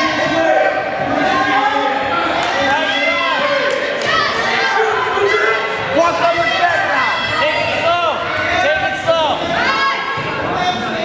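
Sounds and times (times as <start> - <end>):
spectators shouting in a hall: 0.0 - 11.0.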